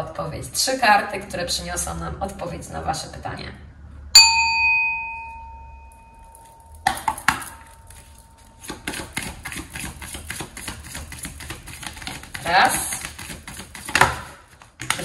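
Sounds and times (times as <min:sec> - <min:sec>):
small bell ringing: 0:04.2 - 0:08.6
cards shuffled by hand: 0:08.1 - 0:15.0.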